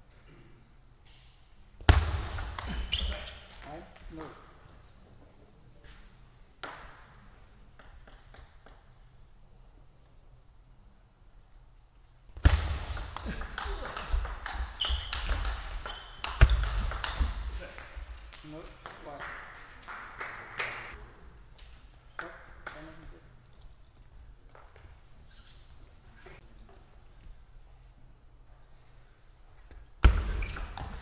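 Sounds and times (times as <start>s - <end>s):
shoe squeak: 2.7s - 3.5s, 13.7s - 17.0s, 25.3s - 26.3s.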